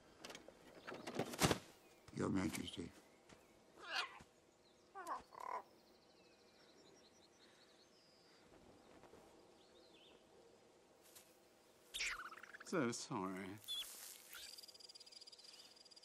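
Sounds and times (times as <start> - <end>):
croaking animal calls: 4.9 - 5.7.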